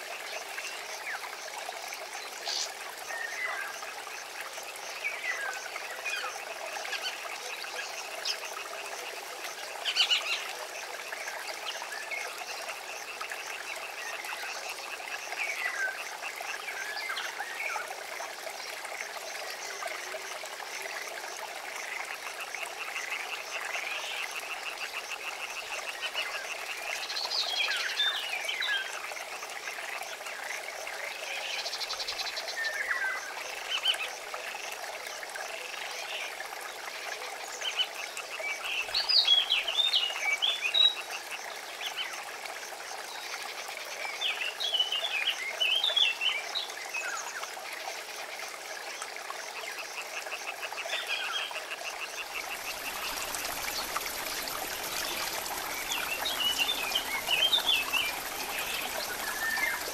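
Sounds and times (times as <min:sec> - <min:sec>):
frogs croaking: 0:00.0 - 0:59.9.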